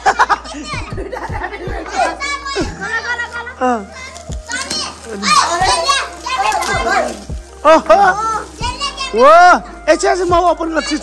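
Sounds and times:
children talking and calling out: 0:00.0 - 0:11.0
children crying oh: 0:01.8 - 0:09.8.

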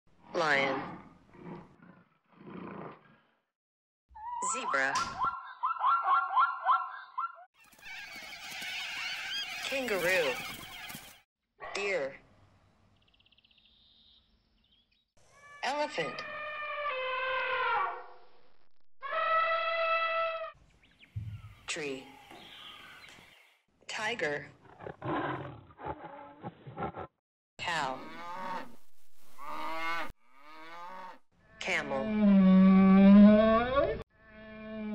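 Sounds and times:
cow mooing: 0:28.0 - 0:28.8, 0:29.4 - 0:31.2.

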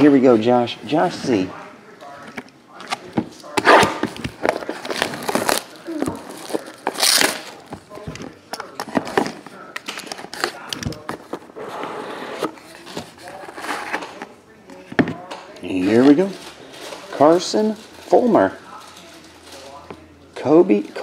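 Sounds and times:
shrink-wrap tearing and crinkling: 0:04.7 - 0:07.6.

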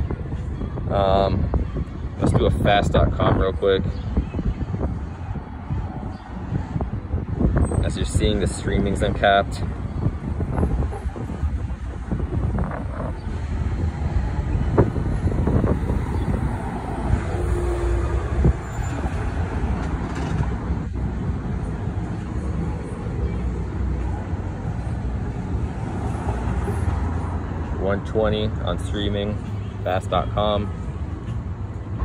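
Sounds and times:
road traffic rumble: 0:00.0 - 0:32.0.

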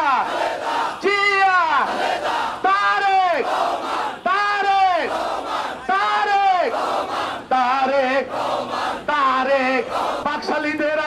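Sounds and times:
man shouting slogan: 0:00.0 - 0:00.3, 0:01.0 - 0:02.0, 0:02.6 - 0:03.5, 0:04.2 - 0:05.1, 0:05.8 - 0:06.8, 0:09.1 - 0:11.0
crowd shouting: 0:00.0 - 0:10.8.

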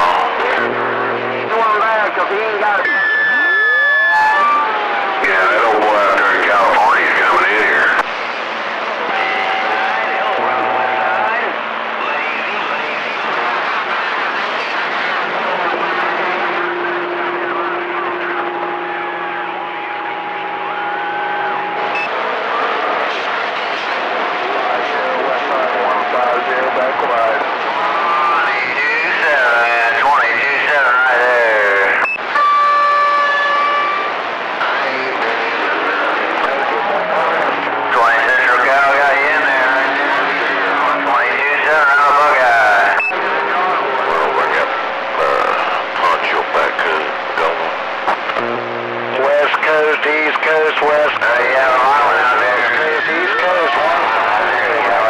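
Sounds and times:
garbled radio voices: 0:00.0 - 0:08.2, 0:24.5 - 0:32.5, 0:33.6 - 0:55.0
radio static hiss: 0:00.0 - 0:55.0.

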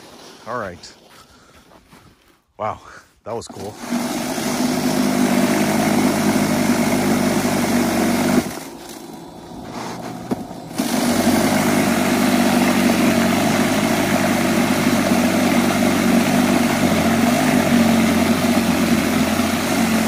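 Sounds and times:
power shovel motor churning snow: 0:03.4 - 0:20.0.

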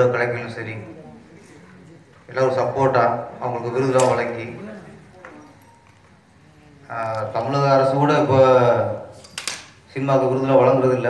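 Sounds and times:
man speaking into a microphone: 0:00.0 - 0:01.1, 0:02.3 - 0:04.9, 0:06.9 - 0:09.1, 0:09.9 - 0:11.0.

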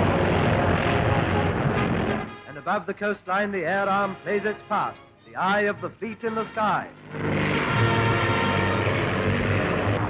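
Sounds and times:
propeller aircraft engines droning: 0:00.0 - 0:10.0.

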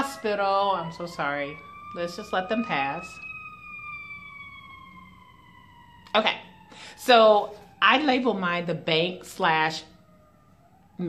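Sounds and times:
ambulance siren wailing: 0:00.0 - 0:11.0.

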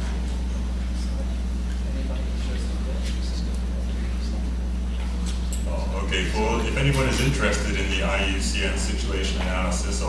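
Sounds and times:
low electrical hum: 0:00.0 - 0:10.0
people talking quietly: 0:00.0 - 0:10.0.

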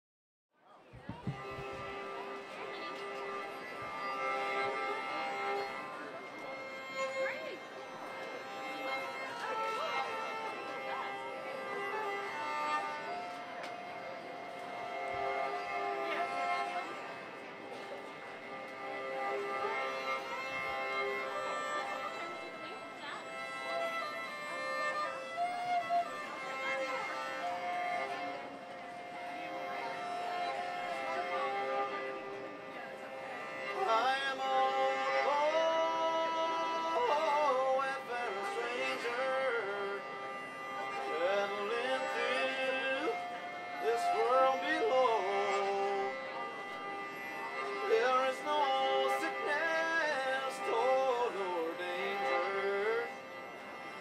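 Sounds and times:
bowed banjo slow tune: 0:00.9 - 0:54.0.

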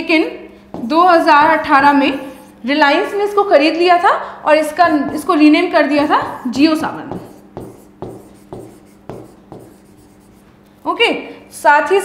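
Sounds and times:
marker pen on whiteboard: 0:00.7 - 0:02.6, 0:04.6 - 0:10.6.

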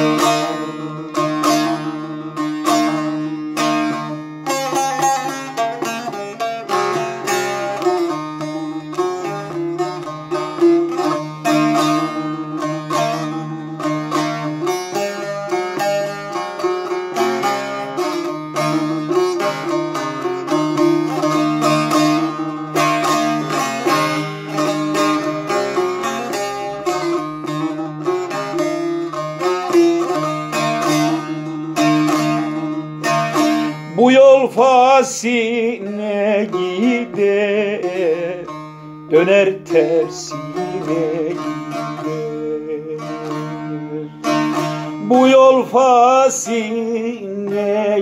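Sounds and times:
plucked long-necked lute: 0:00.0 - 0:48.0.

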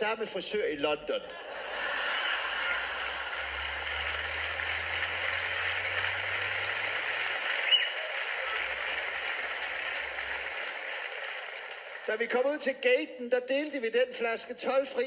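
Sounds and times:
audience laughing: 0:01.2 - 0:09.1
audience applauding: 0:01.5 - 0:12.6.

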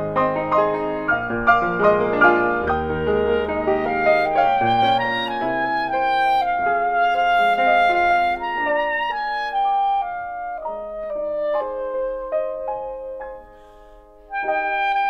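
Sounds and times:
clarinet playing slow folk melody: 0:00.0 - 0:15.0.

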